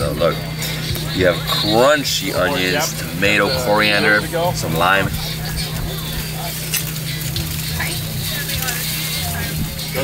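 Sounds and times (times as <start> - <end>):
faint distant voices: 0.0 - 10.0
steady low hum: 0.0 - 10.0.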